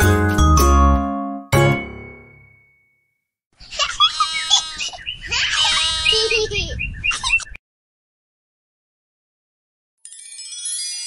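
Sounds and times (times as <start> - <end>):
bird-like chirps: 3.6 - 7.6
high-pitched animal calls: 3.8 - 7.5.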